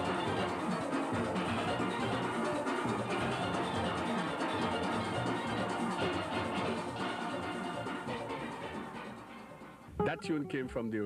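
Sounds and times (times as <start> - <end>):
steel band playing calypso: 0.0 - 11.0.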